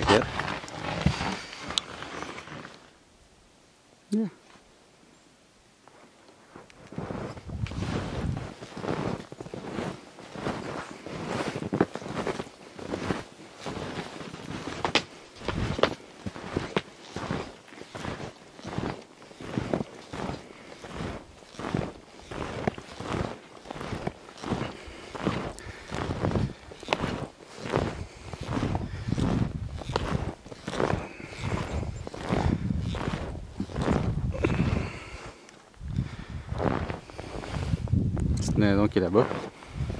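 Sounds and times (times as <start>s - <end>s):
footsteps through snow: 0.0s - 3.0s, 5.9s - 39.9s.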